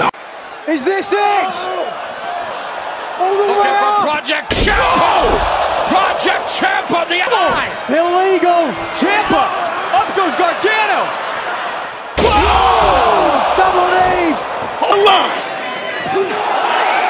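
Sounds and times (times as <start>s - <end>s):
crowd noise: 0.0s - 17.0s
people shouting: 1.1s - 7.9s, 8.6s - 17.0s.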